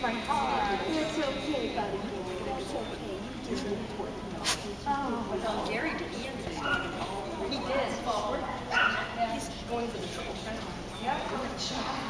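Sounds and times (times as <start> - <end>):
women's voices: 0.0 - 12.0
dog yipping: 8.7 - 9.2.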